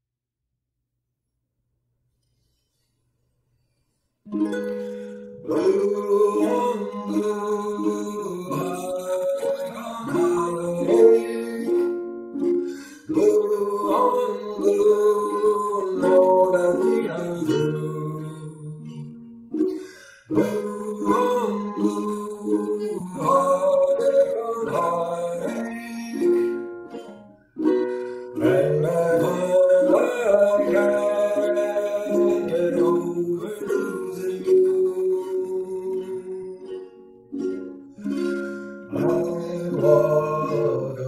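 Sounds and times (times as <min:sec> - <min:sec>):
ukulele chords: 0:04.2 - 0:41.0.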